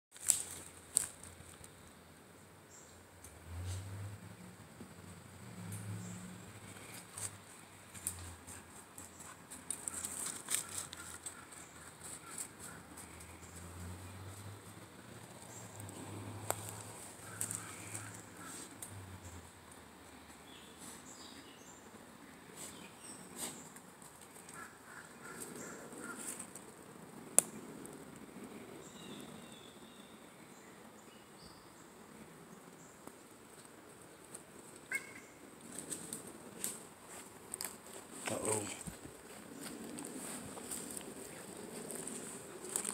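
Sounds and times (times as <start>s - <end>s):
footsteps crunching in dry leaves: 0.1s - 1.6s, 6.6s - 14.6s, 15.4s - 18.8s, 35.6s - 42.9s
twig snapping: 0.2s - 1.7s
faint bird calls: 17.2s - 18.8s, 24.4s - 26.5s, 34.8s - 35.4s.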